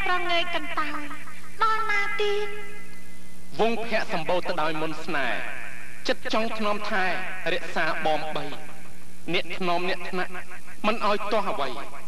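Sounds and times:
woman speaking expressively: 0:00.0 - 0:02.6
steady low hum: 0:00.0 - 0:12.0.

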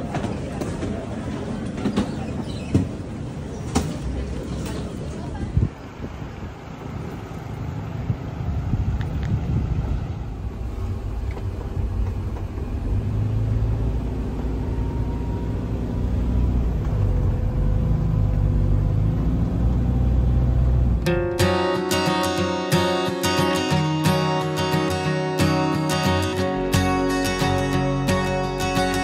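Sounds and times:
van engine and road rumble: 0:00.0 - 0:29.0.

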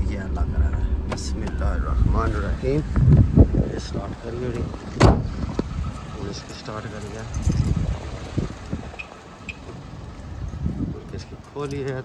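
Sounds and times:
car door shutting: 0:00.6 - 0:03.2, 0:04.5 - 0:05.8.

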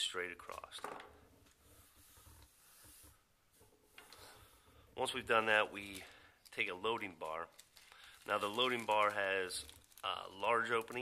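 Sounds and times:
hands rubbing across tabletop: 0:01.6 - 0:03.8.

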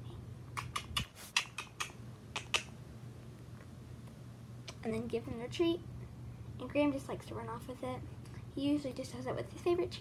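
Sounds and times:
faint low hum: 0:00.0 - 0:10.0
sharp clicks: 0:00.5 - 0:02.7.

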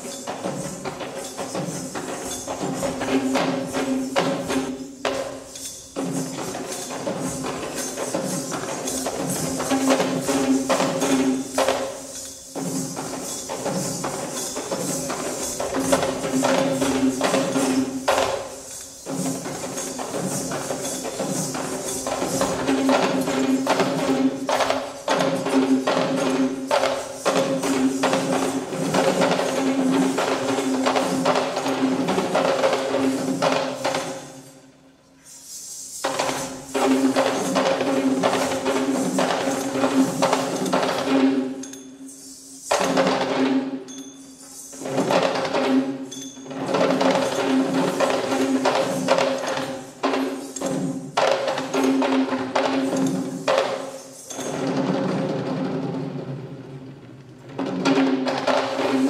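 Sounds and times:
jingling metal percussion: 0:00.0 - 0:56.0.

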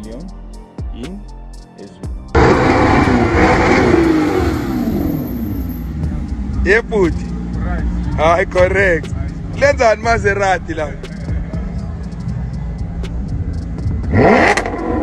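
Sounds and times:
car engine revving and rumbling: 0:02.2 - 0:15.0
people's voices: 0:06.1 - 0:14.4.

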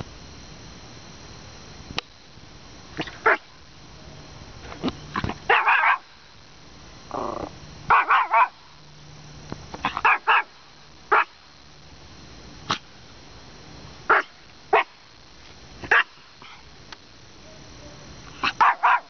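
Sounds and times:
small dog barking: 0:03.0 - 0:03.5, 0:05.5 - 0:06.1, 0:07.9 - 0:08.7, 0:09.8 - 0:11.4, 0:14.1 - 0:15.0, 0:15.8 - 0:16.2, 0:18.4 - 0:19.0.

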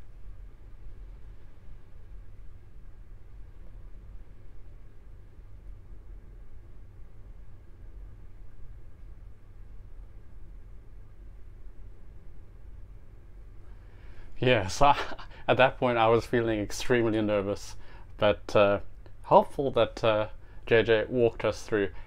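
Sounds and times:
faint hiss: 0:00.0 - 0:22.0.

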